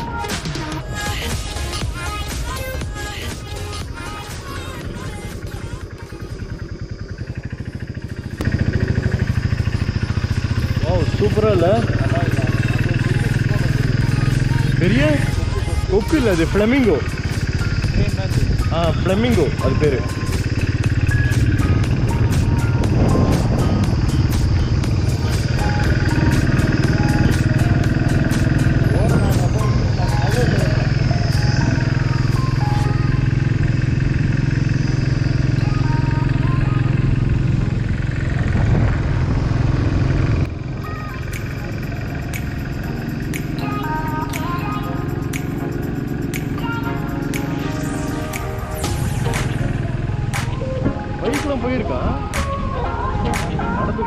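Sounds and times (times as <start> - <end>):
background music: 0.0 - 6.3, 9.8 - 38.3, 40.5 - 54.0
motorcycle engine running: 0.0 - 54.0
wind noise: 17.1 - 30.6, 36.9 - 40.8.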